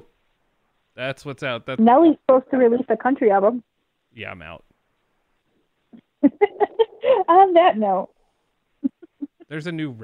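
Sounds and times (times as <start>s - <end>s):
person laughing: 6.0s - 7.4s, 8.8s - 9.5s.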